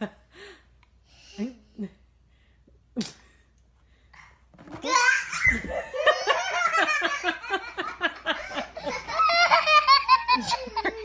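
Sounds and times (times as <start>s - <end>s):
loud laughter: 5.5s - 11.0s.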